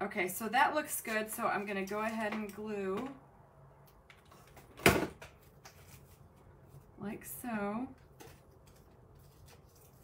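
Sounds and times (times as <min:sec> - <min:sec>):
faint handling sounds: 0:05.4 - 0:07.0.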